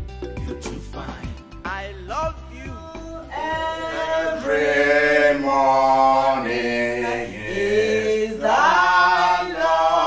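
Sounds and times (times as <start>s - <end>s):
person singing chant-like: 3.2s - 10.0s.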